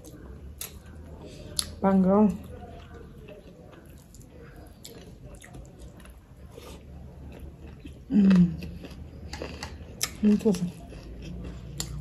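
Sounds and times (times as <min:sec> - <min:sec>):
person chewing food: 0:00.0 - 0:01.8, 0:02.4 - 0:12.0.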